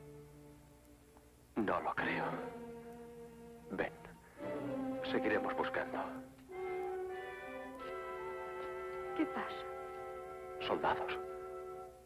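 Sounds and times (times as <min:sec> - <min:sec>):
orchestral music: 0:01.6 - 0:12.0.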